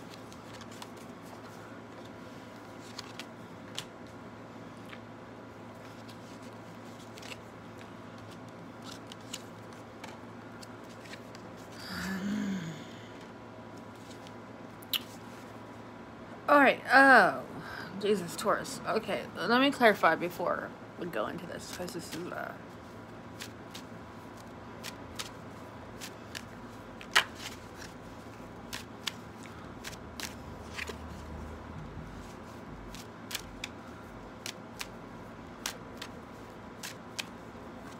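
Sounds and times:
cards clicking and rustling: 0.0 - 4.2, 5.8 - 11.6, 23.3 - 31.4, 32.2 - 37.9
low room hum: 0.0 - 37.9
person humming: 11.8 - 13.2.

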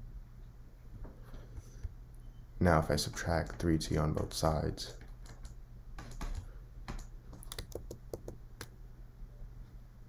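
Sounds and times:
faint steady hum: 0.0 - 10.0
computer input clicking and tapping: 5.0 - 8.7.

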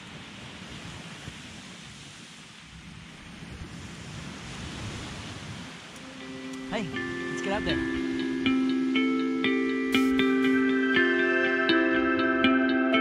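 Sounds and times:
surf washing onto beach: 0.0 - 11.3
wind buffeting microphone: 0.1 - 6.4.

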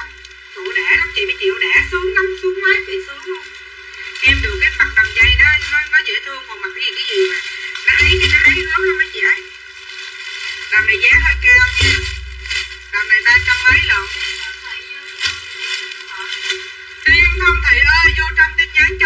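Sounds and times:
voice talking: 0.0 - 9.5, 10.7 - 19.0.

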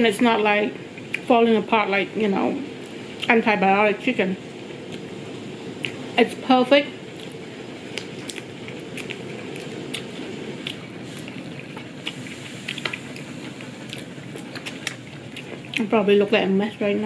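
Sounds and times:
steady low background noise: 0.0 - 17.0
person chewing meat: 5.7 - 6.2, 7.0 - 15.9
wet mouth clicks and smacks: 7.2 - 13.1, 13.9 - 15.8.

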